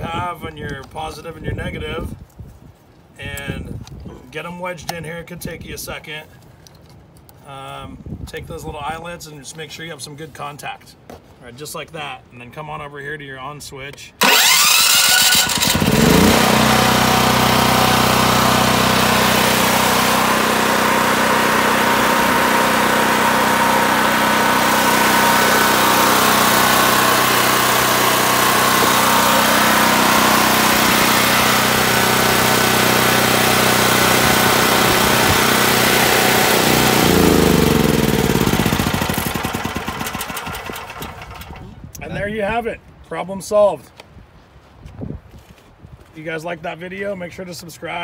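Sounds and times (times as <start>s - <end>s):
generator engine running: 14.2s - 41.8s.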